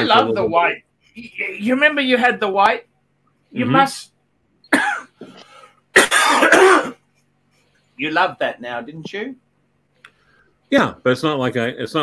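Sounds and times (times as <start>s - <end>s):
man coughing: 4.7s - 7.1s.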